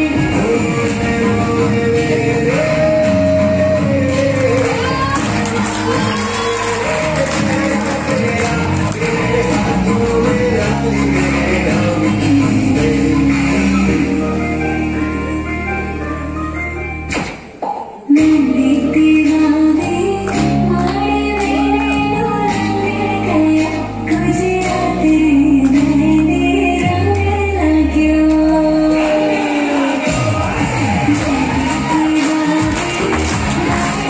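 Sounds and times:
woman singing over music: 0.0 - 16.4, 18.0 - 34.0.

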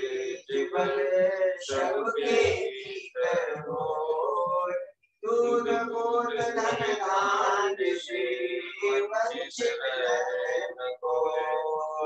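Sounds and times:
man singing a devotional hymn: 0.0 - 12.0.

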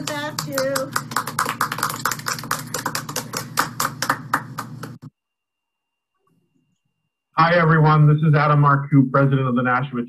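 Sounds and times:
group clapping hands: 0.0 - 5.1.

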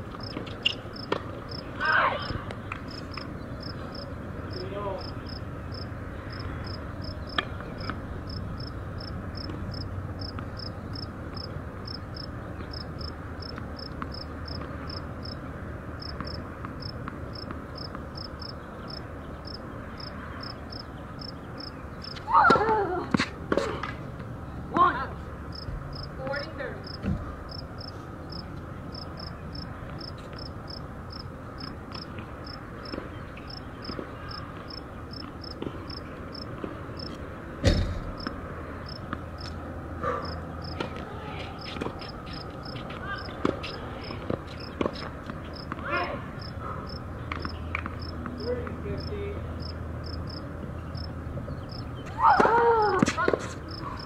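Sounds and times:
insect chirping: 0.2 - 1.6, 3.1 - 7.4, 8.3 - 15.4, 16.0 - 22.2, 25.5 - 26.2, 26.8 - 37.1, 49.0 - 50.4.

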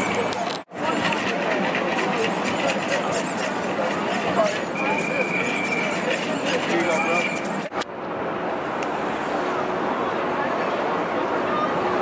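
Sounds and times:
high-pitched squeal: 0.0 - 7.7
street crowd chatter: 0.0 - 12.0.

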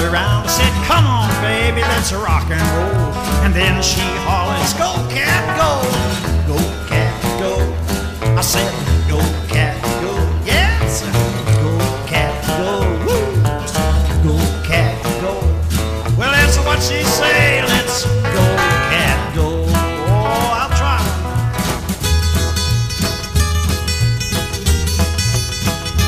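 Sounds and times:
rhythm backing: 0.0 - 26.0
stepping bass line: 0.0 - 26.0
lead guitar solo: 16.6 - 19.3.

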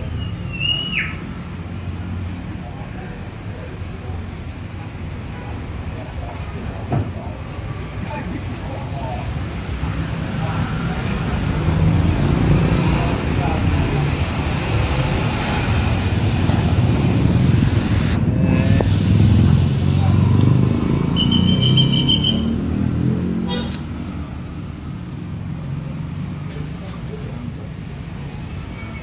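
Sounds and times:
road traffic noise: 0.0 - 29.0
murmur of many voices: 2.3 - 21.8, 25.6 - 29.0.

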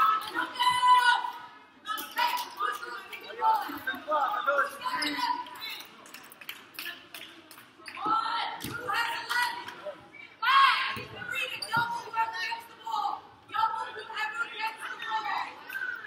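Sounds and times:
people calling out: 0.0 - 5.8.

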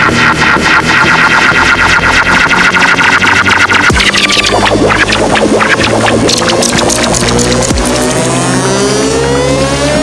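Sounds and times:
synth riser sweeping upward: 0.0 - 10.0
held synth notes: 0.8 - 10.0.

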